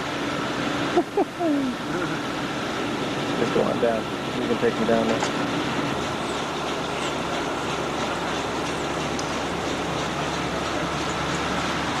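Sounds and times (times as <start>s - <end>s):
foam generator rushing air and water: 0.0s - 12.0s.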